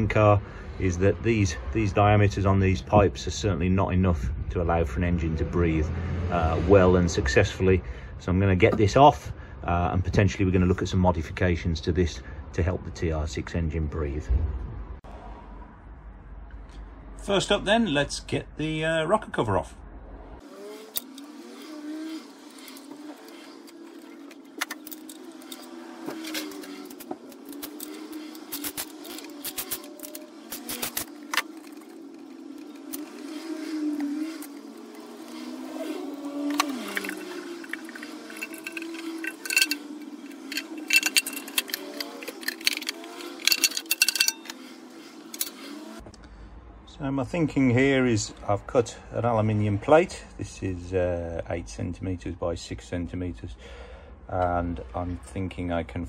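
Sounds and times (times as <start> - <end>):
metallic clicks and clinks: 22.6 - 33.3, 36.2 - 44.7, 45.3 - 45.6.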